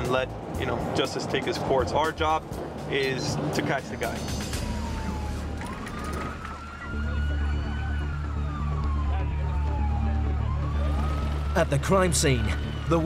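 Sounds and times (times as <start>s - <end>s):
police siren wailing: 4.2s - 13.0s.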